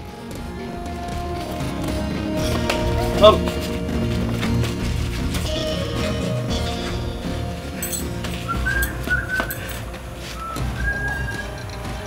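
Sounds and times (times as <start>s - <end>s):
low steady music bed: 0.0s - 12.0s
high whistle-like notes: 5.5s - 11.8s.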